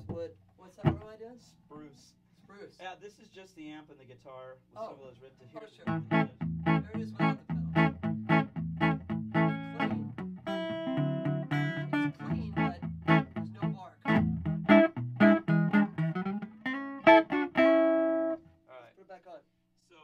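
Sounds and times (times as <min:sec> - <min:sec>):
clean electric guitar riffs: 0:05.9 - 0:18.5.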